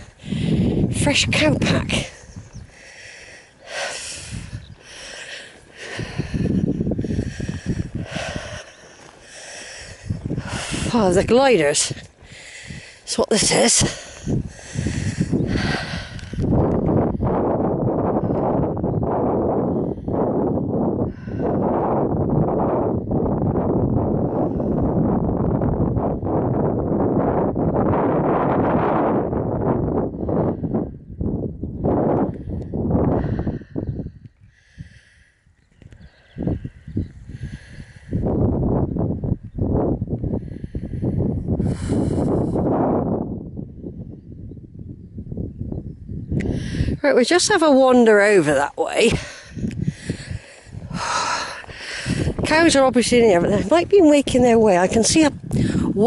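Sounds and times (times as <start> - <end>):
wind buffeting microphone: 0.0 - 56.0
walking through long grass: 2.2 - 10.7.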